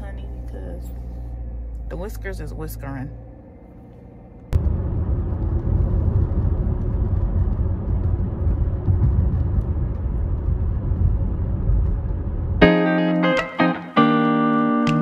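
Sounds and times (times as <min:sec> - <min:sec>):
car driving cabin road noise: 0:00.0 - 0:12.9.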